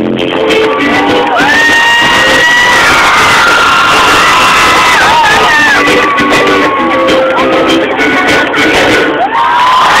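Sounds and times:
live pop concert music: 0:00.0 - 0:10.0
crowd cheering and whooping: 0:00.6 - 0:10.0.

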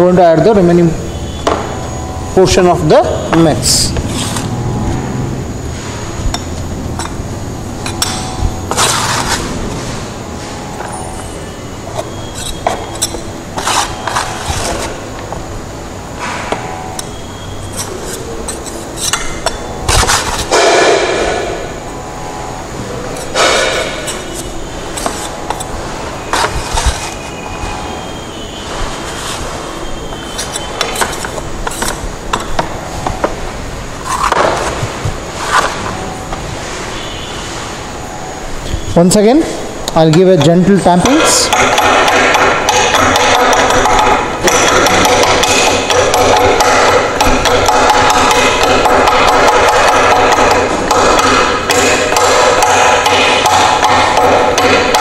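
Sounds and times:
trowel scraping metal mould: 0:11.9 - 0:15.0, 0:17.0 - 0:20.7, 0:23.1 - 0:27.8, 0:29.0 - 0:32.6, 0:34.0 - 0:35.8.

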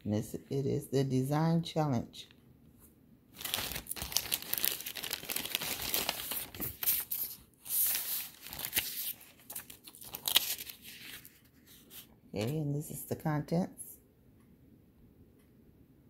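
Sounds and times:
plastic bag crinkling: 0:03.4 - 0:11.3.

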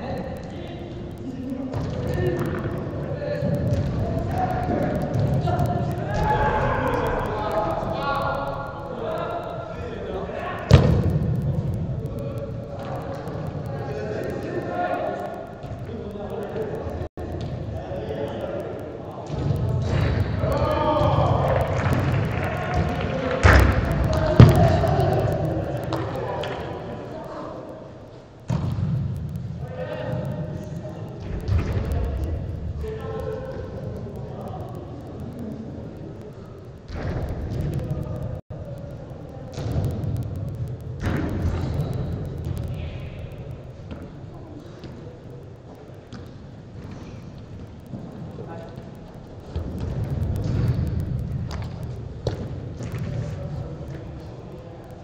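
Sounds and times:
players shouting: 0:02.0 - 0:11.0, 0:20.4 - 0:26.6.

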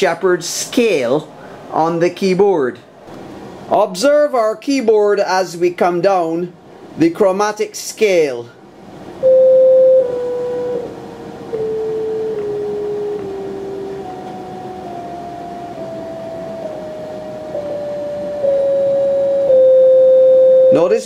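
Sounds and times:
synthesizer descending sine tones: 0:09.2 - 0:21.0.

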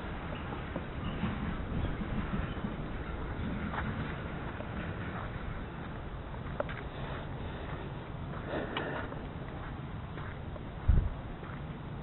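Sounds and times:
low rumbling on microphone: 0:00.0 - 0:12.0.

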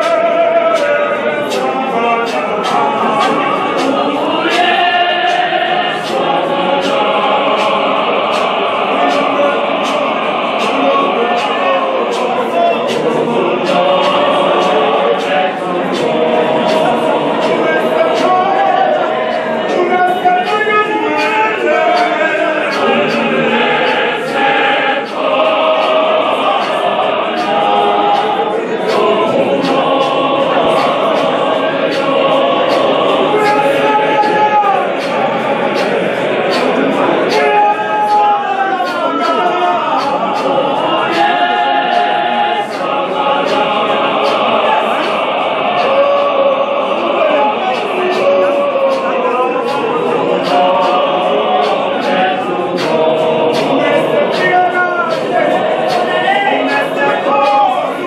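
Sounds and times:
choir singing: 0:00.0 - 0:58.0
steady beat of sharp hits: 0:00.0 - 0:58.0.

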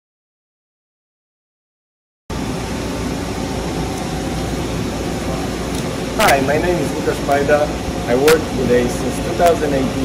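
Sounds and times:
faint hum: 0:02.3 - 0:10.0
running machinery rumble and hiss: 0:02.3 - 0:10.0.

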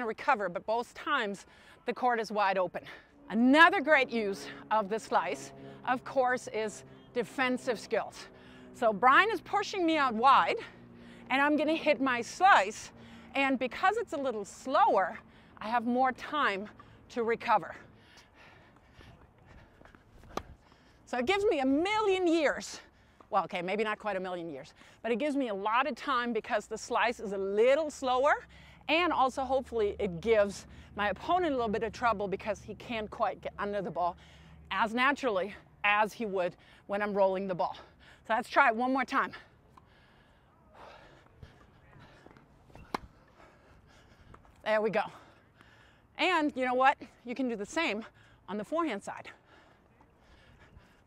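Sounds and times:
tennis racket striking ball: 0:42.3 - 0:43.2.

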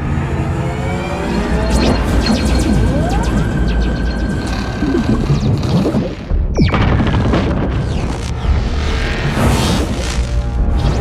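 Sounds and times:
rising whine: 0:00.0 - 0:06.4, 0:07.8 - 0:11.0
dramatic music: 0:00.1 - 0:11.0
deep rumble: 0:00.8 - 0:11.0.

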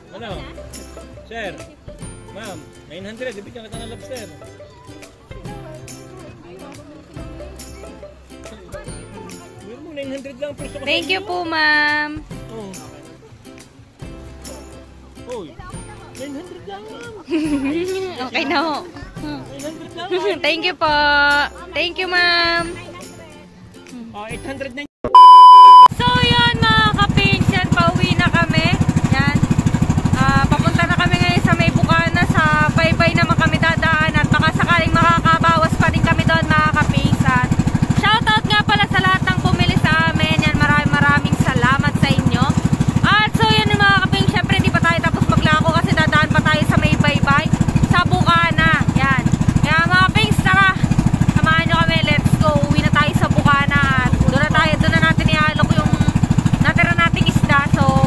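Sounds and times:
boat engine droning: 0:25.9 - 0:58.0.

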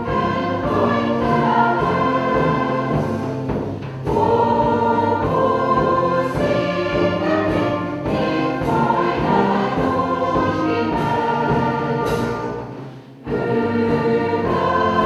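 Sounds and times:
choir breath: 0:00.0 - 0:15.0
mixed choir singing: 0:00.0 - 0:15.0.

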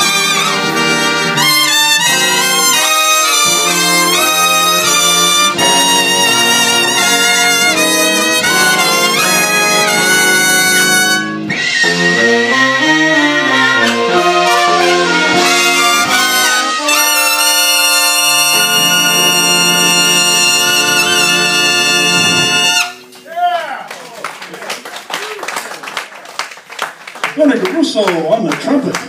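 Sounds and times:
jazz big band playing ballad: 0:00.0 - 0:23.2
trumpet: 0:00.0 - 0:23.5.

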